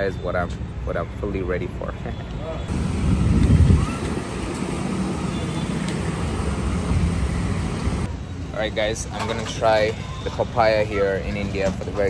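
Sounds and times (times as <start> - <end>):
rumble of passing traffic: 0.0 - 12.0.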